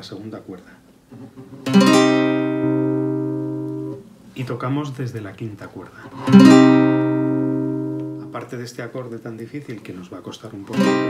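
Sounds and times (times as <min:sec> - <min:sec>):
classical guitar chord strum: 0:01.1 - 0:04.1, 0:06.1 - 0:08.5, 0:10.7 - 0:11.0.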